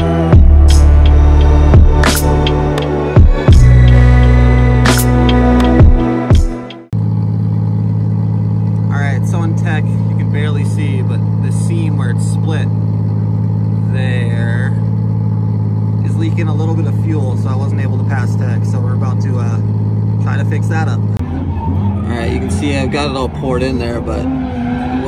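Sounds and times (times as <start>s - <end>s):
engine droning: 0.0s - 25.0s
indistinct voices talking: 8.8s - 25.0s.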